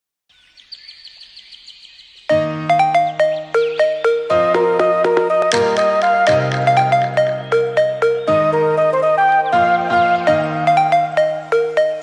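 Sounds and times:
birds chirping: 0.3s - 12.0s.

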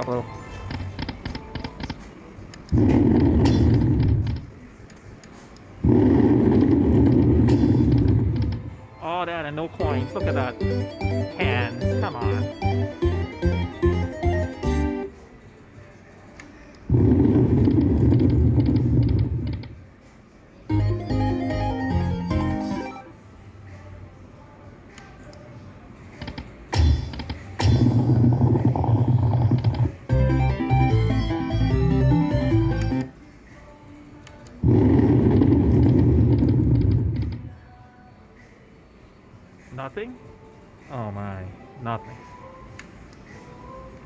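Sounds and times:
slot machine game music: 0.0s - 1.0s, 9.0s - 15.2s, 20.7s - 23.2s, 30.0s - 33.1s.

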